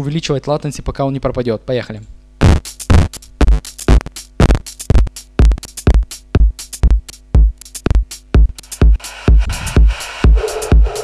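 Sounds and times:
hi-hat ticks: 2.4 - 11.0
kick drum: 2.4 - 11.0.

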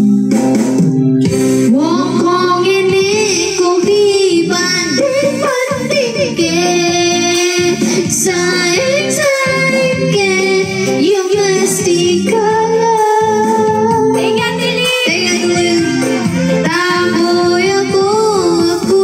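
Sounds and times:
backing music: 0.0 - 19.0
woman singing into a microphone: 1.2 - 19.0.

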